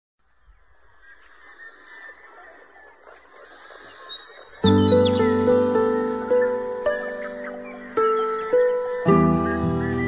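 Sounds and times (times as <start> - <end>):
flock of geese honking: 1.0 - 5.2.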